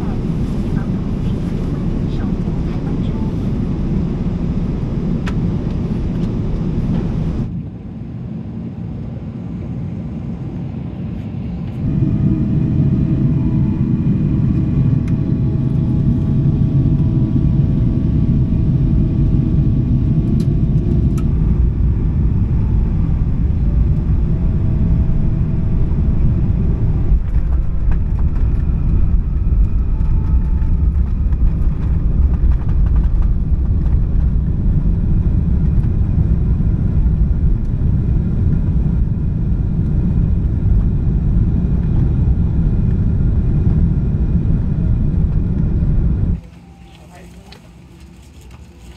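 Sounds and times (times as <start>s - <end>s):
airliner rolling on runway: 0.0s - 48.9s
jet drone in cabin: 0.0s - 48.9s
whining tones: 11.7s - 48.9s.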